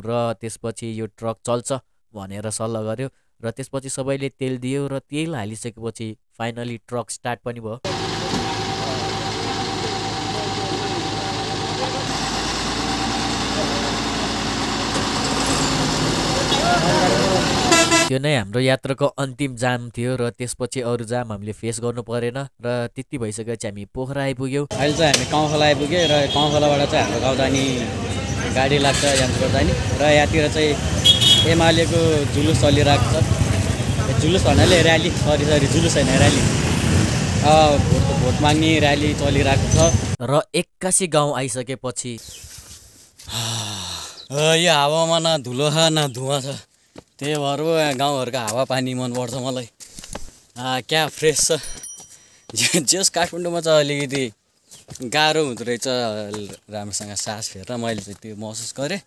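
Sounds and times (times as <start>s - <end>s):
diesel truck engine idling: 7.9s - 18.1s, 24.7s - 36.5s
motor scooters and motorcycles running: 7.9s - 18.1s, 24.7s - 40.2s.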